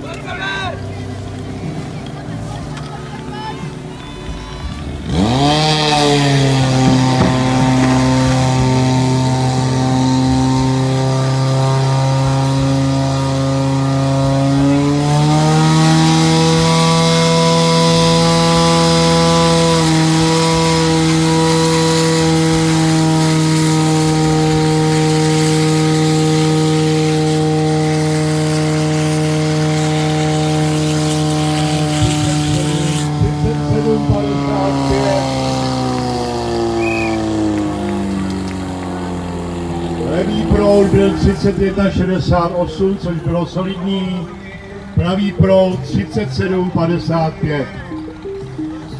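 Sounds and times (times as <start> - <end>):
fire pump engine revving: 0.0 - 48.9.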